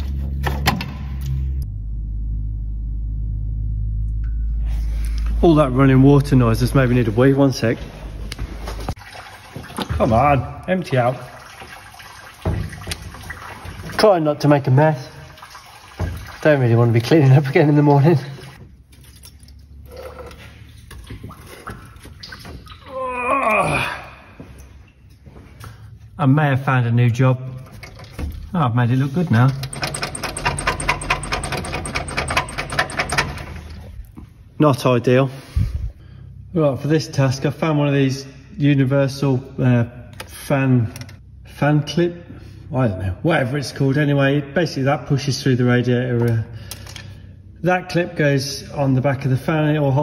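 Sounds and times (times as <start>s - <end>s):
liquid draining from radiator: 8.9s - 22.9s, 27.6s - 34.0s
cooling fan blades ticking: 29.5s - 33.6s.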